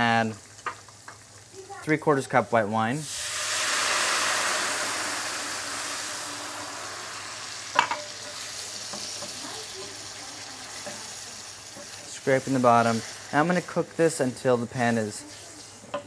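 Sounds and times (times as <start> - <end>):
wine sizzling in hot oil: 0.0 - 16.0
wooden spoon scraping a pan: 10.6 - 16.0.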